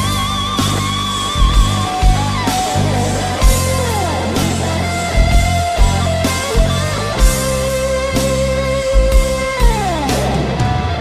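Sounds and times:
bass guitar: 0:00.0 - 0:11.0
electric guitars: 0:00.0 - 0:11.0
guitar lead holding long note: 0:00.0 - 0:11.0
kick drum beat: 0:05.2 - 0:07.6.

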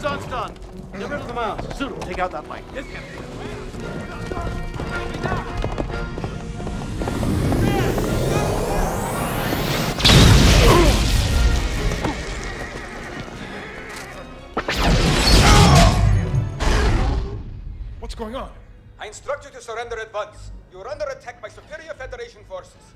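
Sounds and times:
horses whinnying: 0:00.0 - 0:09.4, 0:11.8 - 0:14.4
music: 0:00.0 - 0:22.9
rising whoosh: 0:06.5 - 0:11.8
loud blast: 0:07.0 - 0:12.2, 0:14.6 - 0:18.0.

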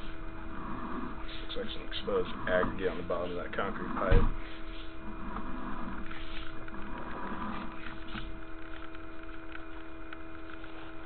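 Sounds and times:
cable clicking and scraping: 0:00.0 - 0:11.0
steady electrical hum: 0:00.0 - 0:11.0.

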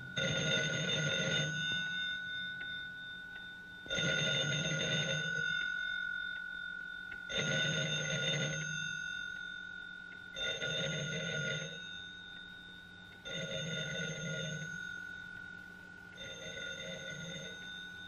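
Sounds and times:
telephone bell ringing: 0:00.0 - 0:18.0.

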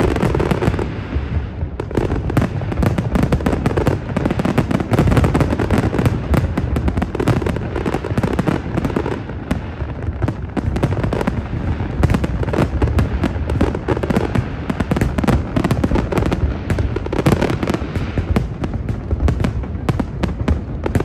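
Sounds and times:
fireworks bangs and crackles: 0:00.0 - 0:21.0.

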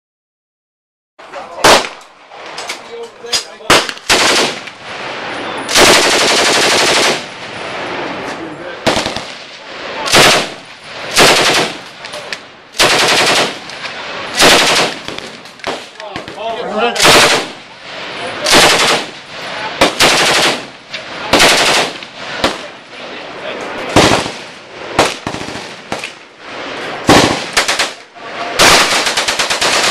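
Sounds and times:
fainter gunshots: 0:01.6 - 0:02.1, 0:03.6 - 0:08.1, 0:08.8 - 0:16.4, 0:17.0 - 0:17.7, 0:18.4 - 0:22.8, 0:23.9 - 0:26.2, 0:27.0 - 0:29.9
automatic rifle firing bursts: 0:03.7 - 0:04.6, 0:05.7 - 0:07.3, 0:08.8 - 0:09.4, 0:10.1 - 0:11.8, 0:12.8 - 0:13.6, 0:14.4 - 0:15.8, 0:17.0 - 0:17.6, 0:18.5 - 0:19.1, 0:19.8 - 0:20.7, 0:21.3 - 0:22.6, 0:25.0 - 0:26.0, 0:27.1 - 0:28.0, 0:28.6 - 0:29.9.

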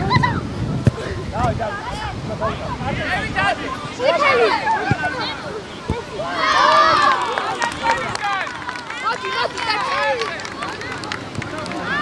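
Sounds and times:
children shouting: 0:03.6 - 0:12.0.

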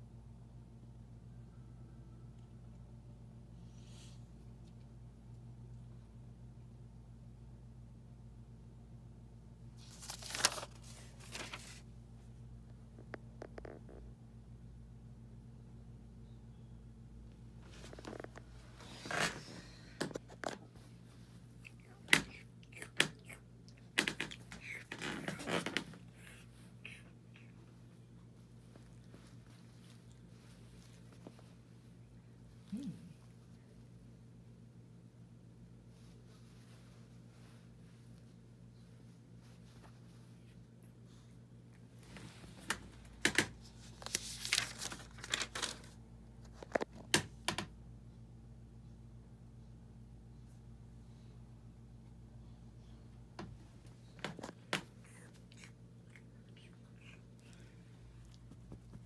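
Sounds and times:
faint steady hum: 0:00.0 - 0:59.0
paper handling: 0:09.8 - 0:11.9, 0:42.6 - 0:47.0.

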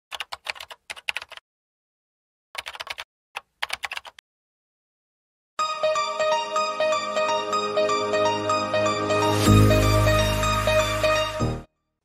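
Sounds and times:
computer keyboard typing: 0:00.1 - 0:01.4, 0:02.6 - 0:04.2.

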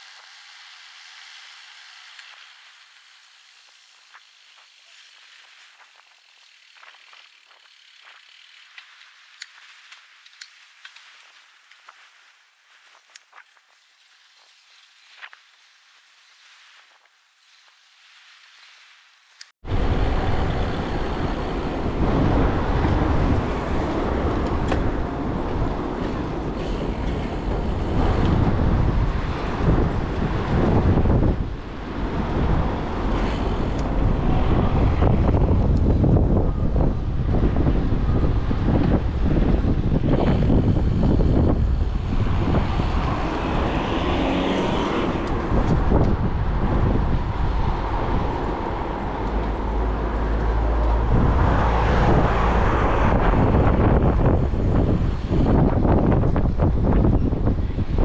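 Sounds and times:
wind rushing over microphone: 0:19.6 - 0:58.0
car traffic going by: 0:40.8 - 0:55.7.

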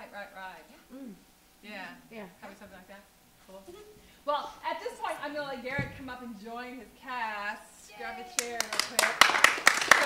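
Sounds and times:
woman speaking: 0:00.0 - 0:09.2
audience applause: 0:08.4 - 0:10.0.

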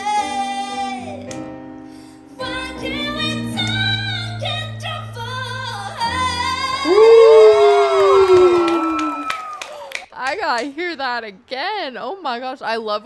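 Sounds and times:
woman singing: 0:00.0 - 0:01.2, 0:02.4 - 0:07.6
sustained keyboard chords: 0:00.0 - 0:07.8.

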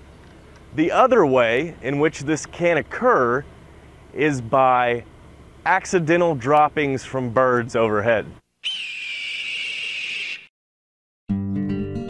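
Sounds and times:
raspy high screech: 0:08.6 - 0:10.5.

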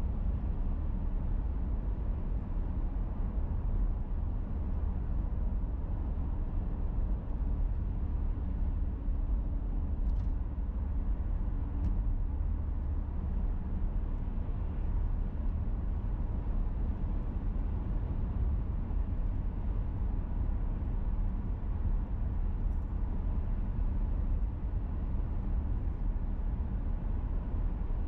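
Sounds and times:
car engine and tyre rumble: 0:00.0 - 0:28.0.

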